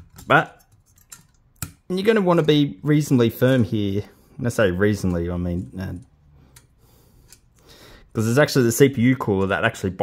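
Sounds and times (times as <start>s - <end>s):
faint plastic clips clicking: 0.0s - 1.9s.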